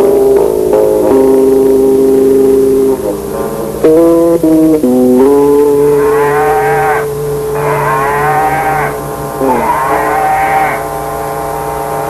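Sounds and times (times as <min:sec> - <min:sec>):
distorted held note: 0:00.0 - 0:12.0
wavering moo-like cries: 0:05.5 - 0:11.0.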